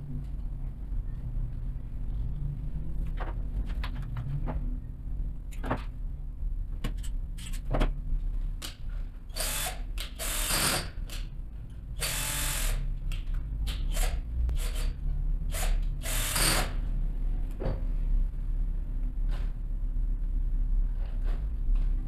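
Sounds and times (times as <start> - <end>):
cordless drill running in bursts: 9.4 - 10.9, 12.0 - 12.8, 15.5 - 16.7.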